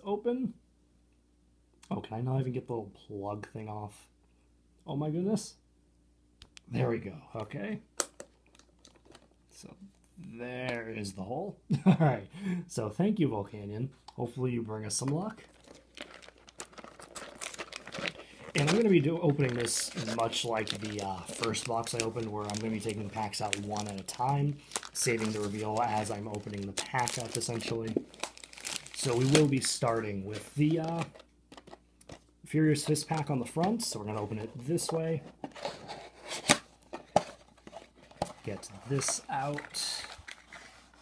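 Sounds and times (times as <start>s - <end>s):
plastic wrapping crinkling: 8.0s - 9.4s, 15.3s - 32.3s, 35.4s - 41.0s
cardboard rustling: 15.3s - 32.2s, 32.9s - 41.0s.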